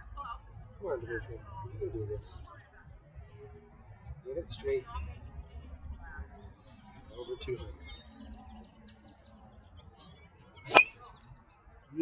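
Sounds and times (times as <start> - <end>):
golf club striking ball: 10.7 - 10.9.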